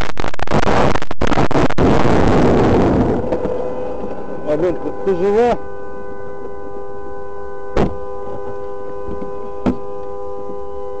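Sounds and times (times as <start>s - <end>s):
two-tone car horn: 3.2s - 11.0s.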